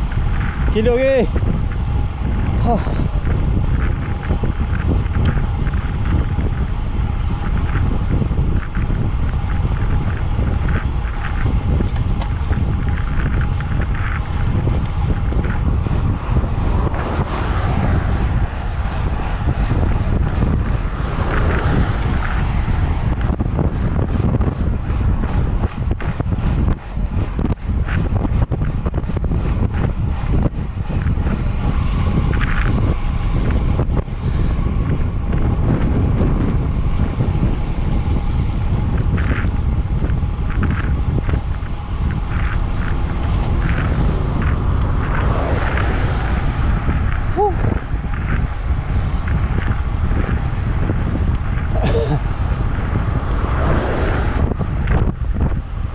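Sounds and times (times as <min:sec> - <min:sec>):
wind buffeting microphone: 0:00.0 - 0:55.9.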